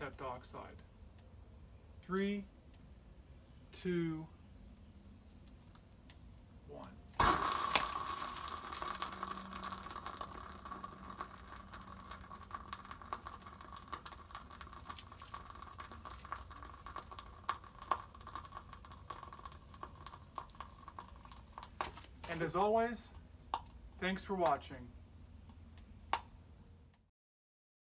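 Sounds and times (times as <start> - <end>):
fire hissing and crackling: 7.1 - 26.7
loud ignition pop: 7.2 - 9.1.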